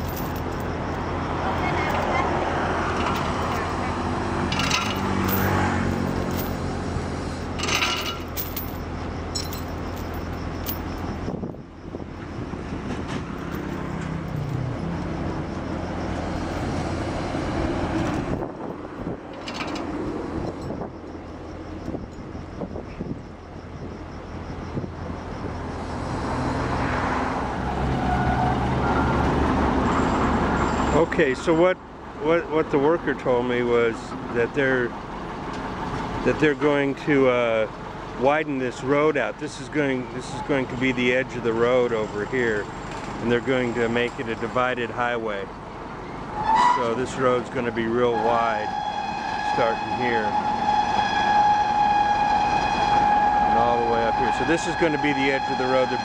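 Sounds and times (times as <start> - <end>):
sharp metallic clinks: 0.0 - 2.3, 4.5 - 6.7, 7.4 - 11.8, 13.3 - 14.8, 19.3 - 23.3
road traffic passing: 0.0 - 56.0.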